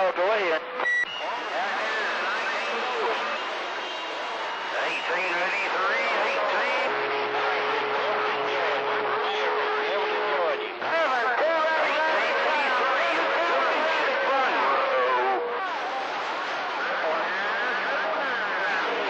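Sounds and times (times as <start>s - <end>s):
overlapping radio voices: 0.0s - 19.0s
whistling radio tones: 0.8s - 10.8s, 11.6s - 19.0s.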